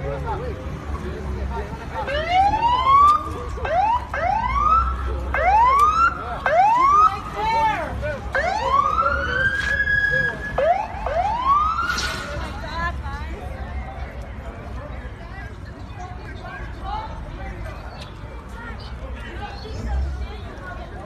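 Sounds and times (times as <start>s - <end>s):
police siren sweeping up: 8.3s - 12.3s.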